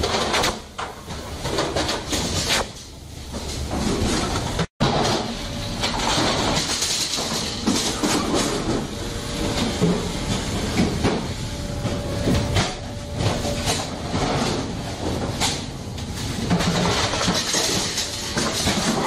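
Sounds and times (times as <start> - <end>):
conveyor rumble and hiss: 0.0 - 19.0.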